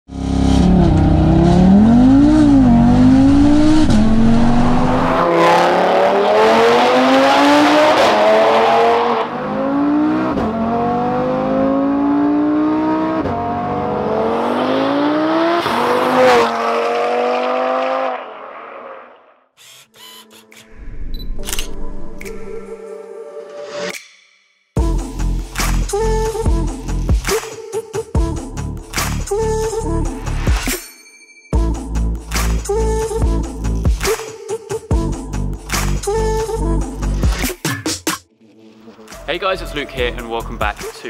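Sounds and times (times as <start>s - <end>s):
car engine accelerating through gears: 0.1s - 18.9s.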